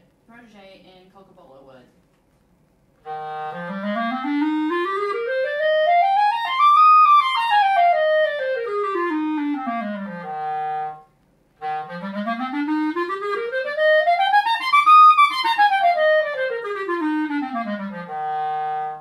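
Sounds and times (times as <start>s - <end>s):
clarinet playing scales: 3.0s - 19.0s.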